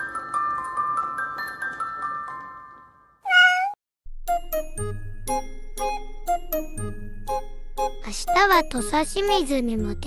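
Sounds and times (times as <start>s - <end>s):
cat meowing: 3.3s - 3.8s
glockenspiel music: 4.3s - 10.0s.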